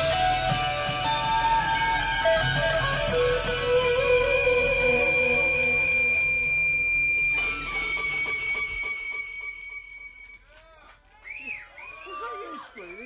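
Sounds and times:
high held tone: 0.0s - 10.5s
live rock band: 0.0s - 10.5s.

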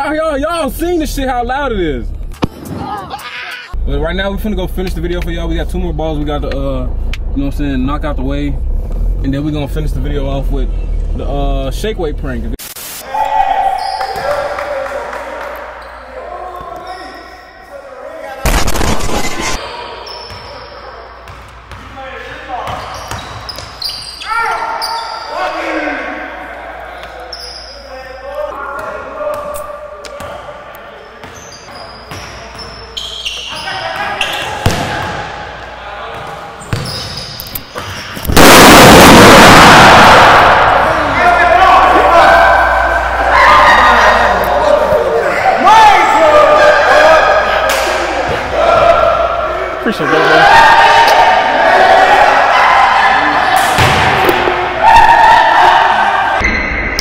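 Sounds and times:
loud shouting: 13.0s - 18.4s, 24.2s - 26.9s, 38.4s - 56.4s
basketball bursting bang: 38.3s - 41.2s
voices: 38.4s - 56.4s.

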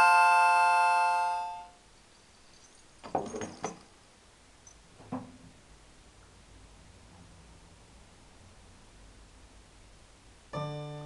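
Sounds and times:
harmonica chord: 0.0s - 1.8s, 10.6s - 11.0s.

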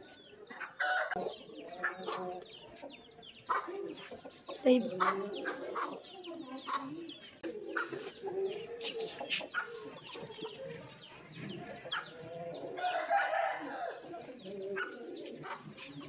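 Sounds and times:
chickens clucking: 0.0s - 16.0s.

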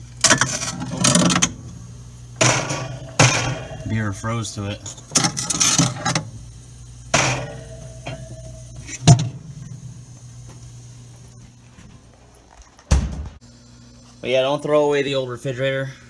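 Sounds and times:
fridge compressor hum: 0.0s - 16.0s.

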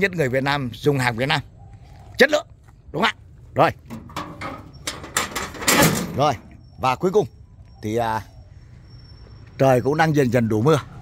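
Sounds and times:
sheet-metal bonnet scraping and rattling: 3.9s - 6.6s.

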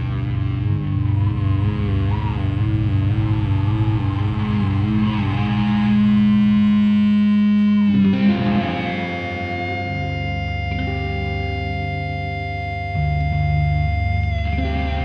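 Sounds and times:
distorted electric guitar: 0.0s - 15.0s.

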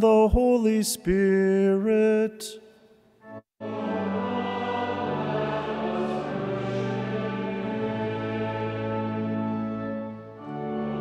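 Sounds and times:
organ accompaniment: 3.2s - 11.0s
congregation singing: 3.3s - 11.0s.

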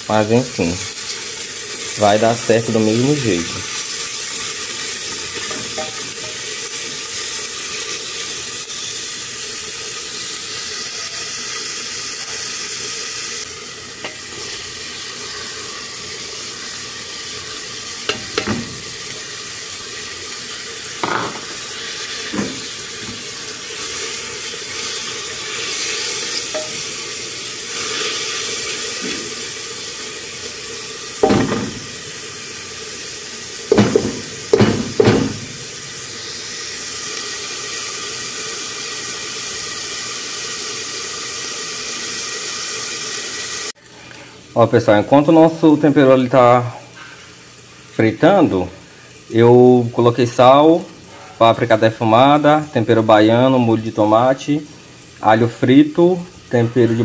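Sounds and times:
vegetables sizzling in hot oil: 0.0s - 57.0s
spoon knocking against pot: 33.7s - 35.4s.

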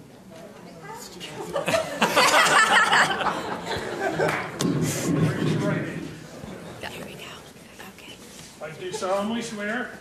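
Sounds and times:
murmur of quiet voices: 0.0s - 10.0s.

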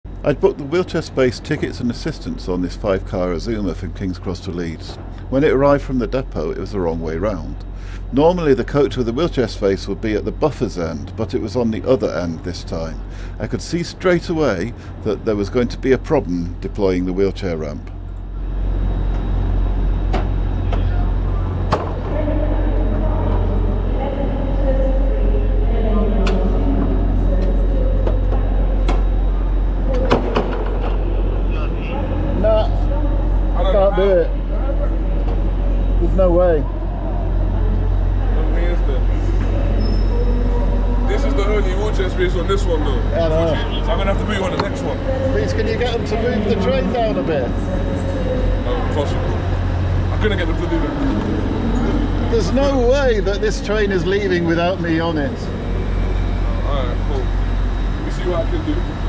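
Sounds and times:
indistinct voices: 0.1s - 59.0s
low hum of standing train: 0.1s - 59.0s.

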